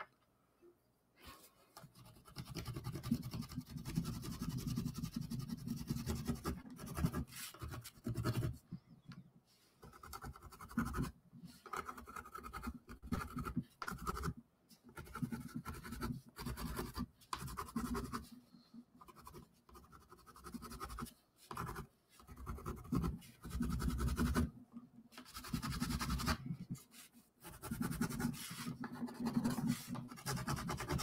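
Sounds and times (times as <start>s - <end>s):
pencil scratching on cardboard: 1.8s - 8.6s, 9.8s - 31.0s.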